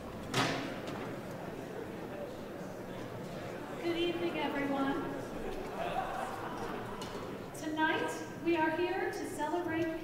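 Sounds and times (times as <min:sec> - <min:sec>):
murmur of audience: 0:00.0 - 0:10.0.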